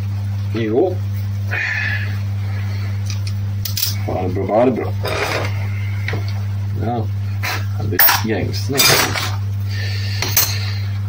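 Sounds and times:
steady low hum: 0.0s - 11.0s
metal tools clinking: 3.7s - 4.0s, 8.0s - 9.4s.

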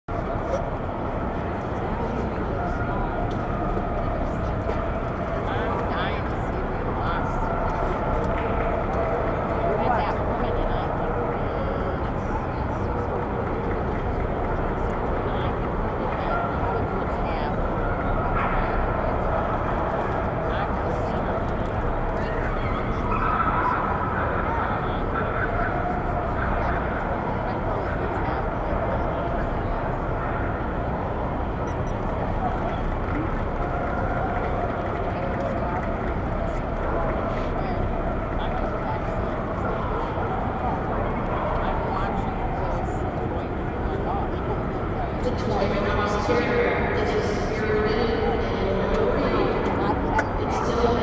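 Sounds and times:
murmur of many voices: 0.0s - 51.0s.

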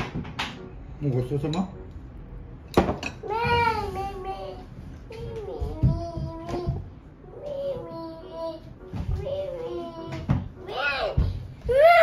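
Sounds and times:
toddler crying whinily: 10.7s - 12.0s.

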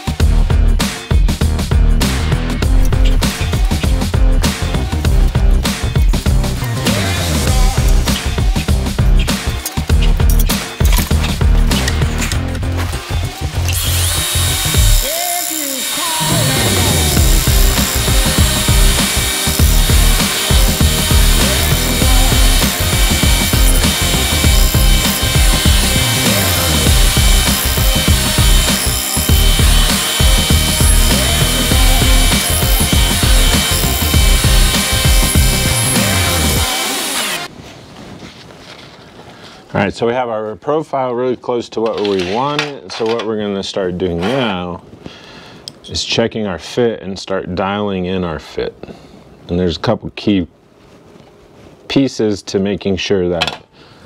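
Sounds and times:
background music: 0.0s - 37.5s
belt grinder grinding knife blade: 13.6s - 37.5s.

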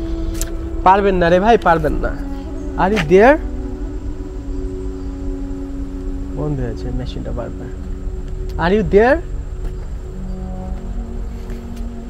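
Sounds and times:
ambient music drone: 0.0s - 12.0s.

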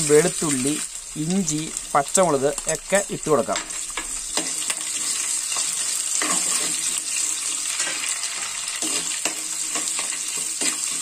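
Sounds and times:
food sizzling in hot oil: 0.0s - 11.0s
spatula scraping pot: 3.5s - 11.0s.

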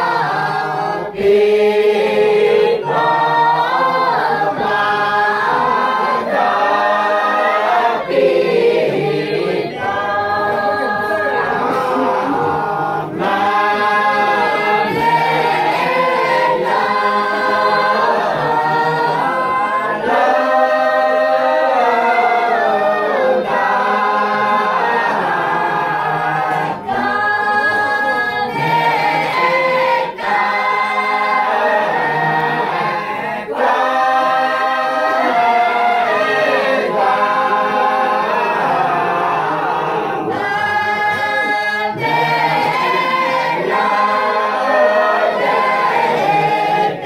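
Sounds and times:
group singing unaccompanied: 0.0s - 47.0s.

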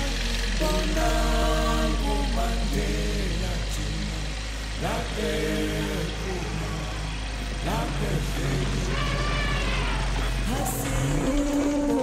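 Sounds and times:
held musical tones: 0.0s - 12.0s
vehicle engine rumble: 0.0s - 12.0s
voice-like calls: 8.4s - 11.1s.

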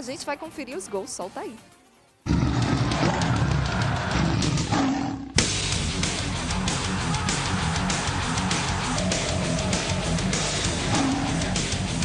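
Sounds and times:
lion roar: 2.2s - 5.5s, 8.6s - 12.0s.

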